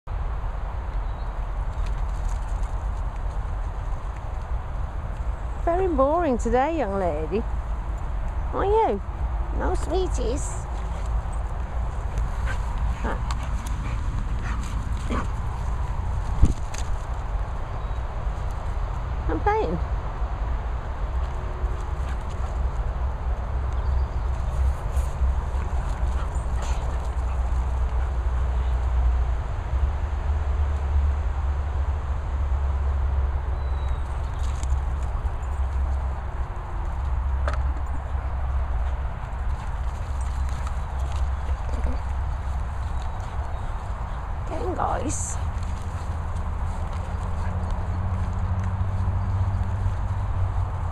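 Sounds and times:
steady low rumble: 0.6s - 50.9s.

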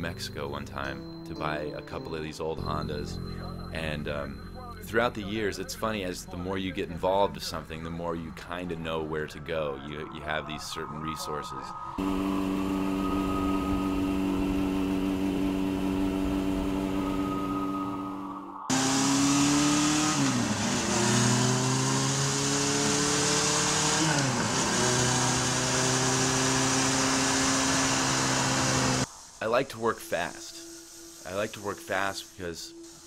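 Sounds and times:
motorcycle engine revving: 12.0s - 17.7s, 18.7s - 29.1s.

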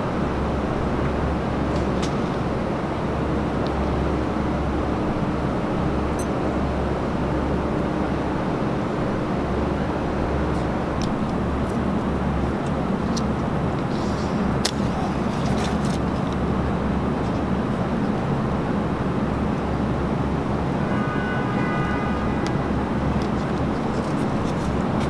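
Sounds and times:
city traffic rumble: 0.0s - 25.0s.

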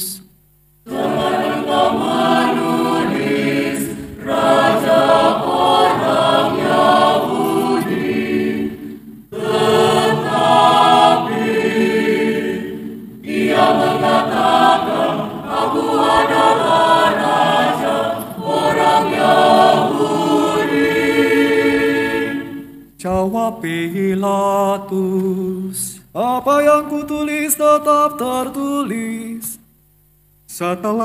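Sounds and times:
choir chanting: 0.9s - 22.9s.

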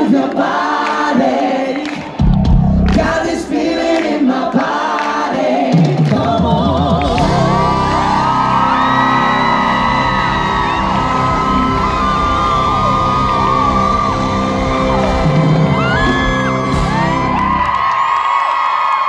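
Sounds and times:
live pop band playing: 5.9s - 17.7s
crowd screaming and cheering: 6.9s - 19.0s.

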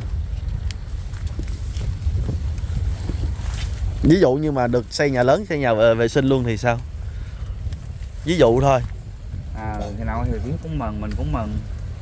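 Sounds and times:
rustling of plants: 0.0s - 12.0s
wind buffeting microphone: 0.0s - 12.0s.

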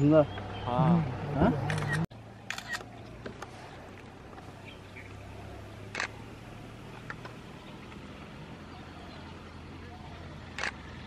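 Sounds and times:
quiet outdoor background: 0.0s - 11.0s
camera shutter clicks: 1.7s - 2.9s, 5.9s - 6.2s.

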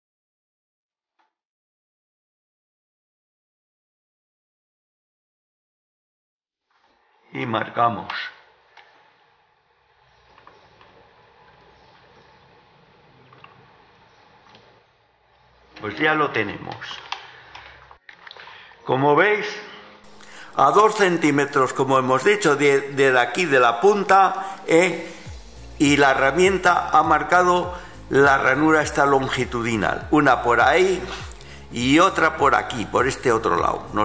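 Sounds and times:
low room noise: 6.7s - 34.0s
man's voice: 18.9s - 34.0s.

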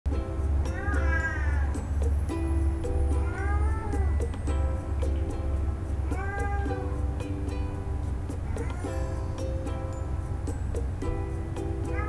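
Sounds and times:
light background music: 0.1s - 12.0s
cat meowing: 0.7s - 1.8s, 3.1s - 4.4s, 6.1s - 6.9s, 8.5s - 9.1s.

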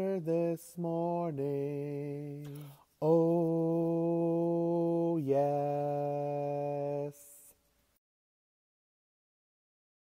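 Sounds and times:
man singing unaccompanied: 0.0s - 7.6s.

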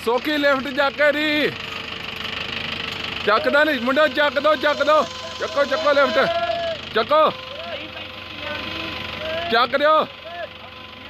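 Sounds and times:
tractor diesel engine running: 0.0s - 11.0s
man shouting: 3.3s - 10.6s.

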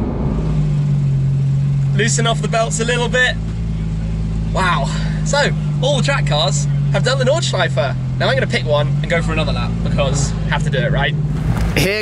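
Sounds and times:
car engine droning in cabin: 0.0s - 12.0s.

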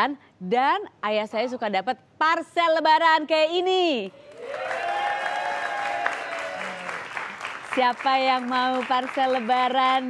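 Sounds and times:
audience applauding: 4.3s - 10.0s.

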